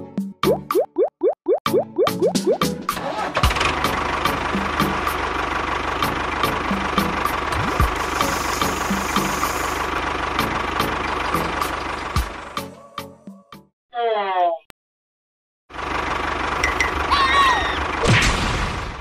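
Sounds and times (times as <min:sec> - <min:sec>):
background music with beat: 0:01.6 - 0:02.9
engine idling: 0:02.6 - 0:12.8, 0:15.7 - 0:18.1.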